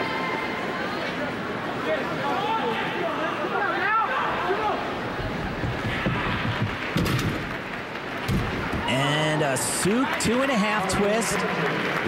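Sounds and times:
arena crowd murmur: 0.0s - 6.9s, 8.6s - 12.0s.

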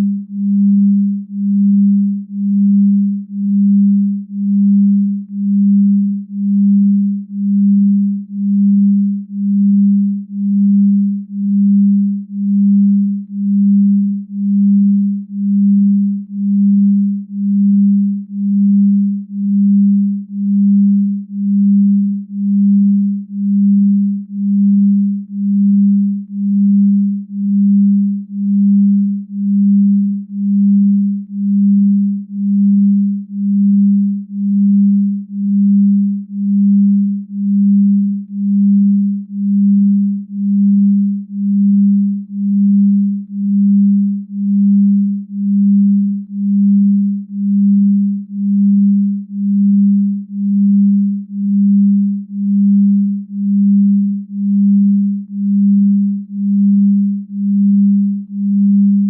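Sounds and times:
low pulsing pure tone: 0.0s - 59.0s.

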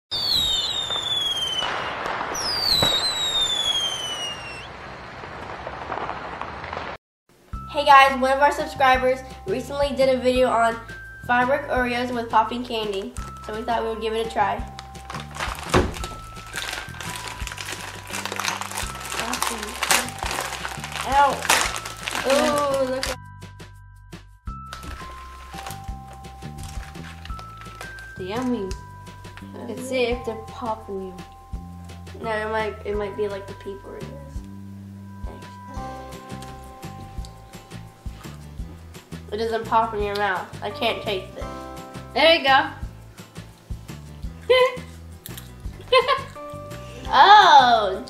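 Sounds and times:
firework bang: 0.1s - 7.0s
firework crackling: 0.1s - 7.0s, 14.8s - 23.2s, 24.8s - 28.5s
firework whistles: 0.1s - 7.0s
background music: 7.4s - 48.0s
plastic wrapper crinkling: 14.7s - 23.2s, 24.7s - 28.8s.

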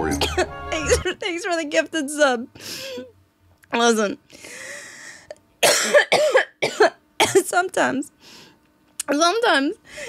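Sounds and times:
woman coughing: 0.1s - 1.2s, 5.6s - 7.6s.

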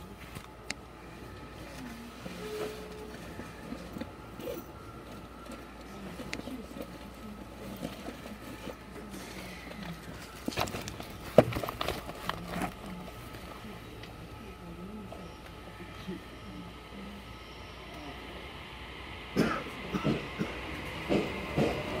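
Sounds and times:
faint voices talking: 0.0s - 22.0s
faint steady tone: 11.9s - 19.4s.

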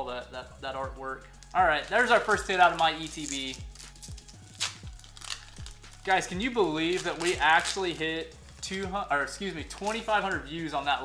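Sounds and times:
background music with low beat: 0.0s - 11.0s
foil wrapper crinkling and tearing: 1.3s - 8.3s, 9.7s - 10.3s.

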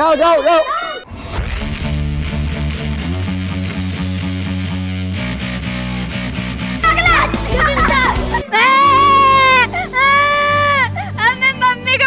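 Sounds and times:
girl wailing and sobbing: 6.9s - 11.5s.

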